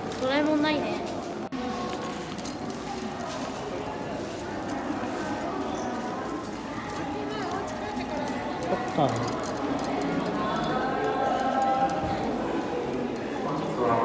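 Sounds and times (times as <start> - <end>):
chatter of voices: 0.0 - 14.0.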